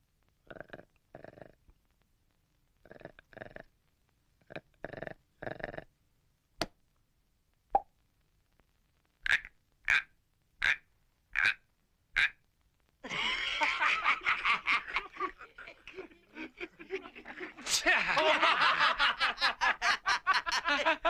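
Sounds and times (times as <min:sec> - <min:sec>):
cartoon frog croaking: 0:00.4 - 0:01.6, 0:02.8 - 0:03.7, 0:04.4 - 0:05.9, 0:09.2 - 0:12.4.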